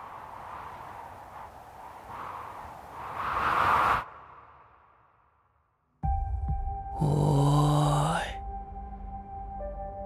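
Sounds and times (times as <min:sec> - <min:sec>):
background music: 0:06.0 - 0:10.0
man shouting: 0:07.0 - 0:08.4.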